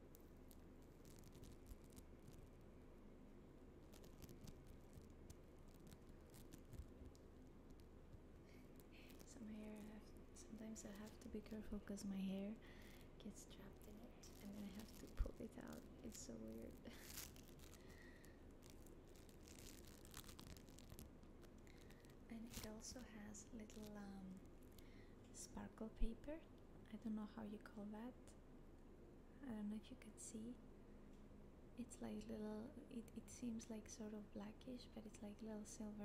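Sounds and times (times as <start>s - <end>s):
foam beads crackling: 0.0s - 2.6s, 3.7s - 25.0s.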